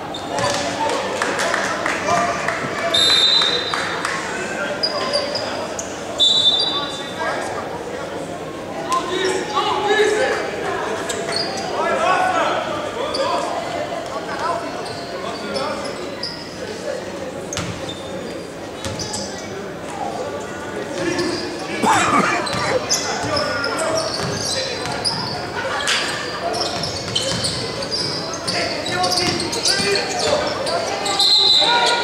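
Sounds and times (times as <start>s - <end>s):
indistinct voices in echoing hall: 0.0s - 32.0s
person calling out loudly: 21.8s - 22.9s.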